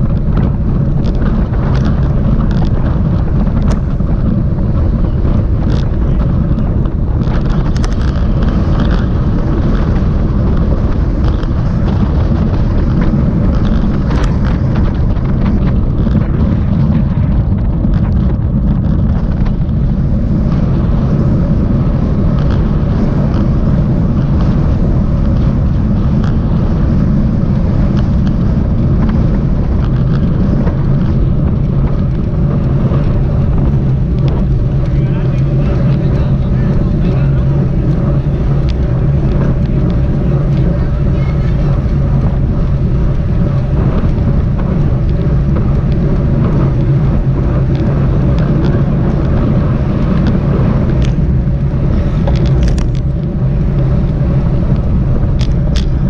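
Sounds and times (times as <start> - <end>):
tyre and road noise: 0.0 - 56.0
wind rumble on microphone: 0.0 - 56.0.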